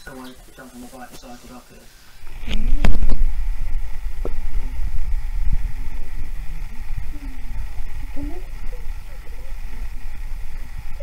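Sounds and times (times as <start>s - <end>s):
microphone handling rumble: 2.2s - 11.0s.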